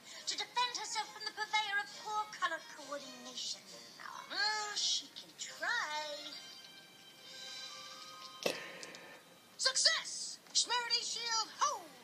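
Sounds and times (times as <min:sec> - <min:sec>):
cartoon background music: 0:00.0 - 0:12.0.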